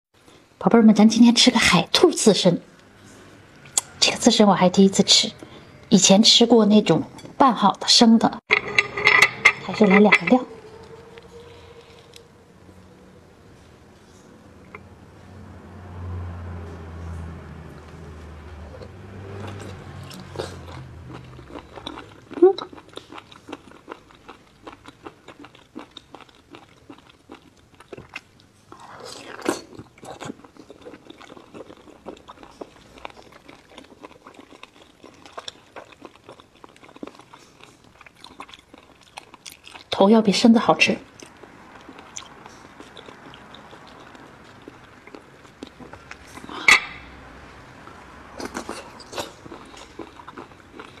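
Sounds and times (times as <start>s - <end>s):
low hum: 8.5s - 22.3s
close-up chewing and biting: 18.8s - 39.9s, 41.1s - 47.0s, 48.4s - 51.0s.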